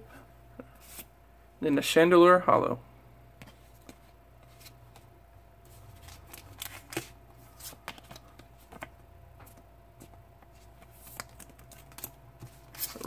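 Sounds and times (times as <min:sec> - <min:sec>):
trading cards rustling: 0:03.4 - 0:13.0.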